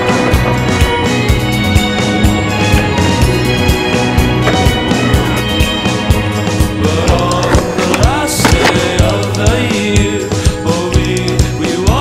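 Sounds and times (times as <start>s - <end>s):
music with steady beat: 0.0s - 12.0s
skateboard rolling on concrete: 0.0s - 12.0s.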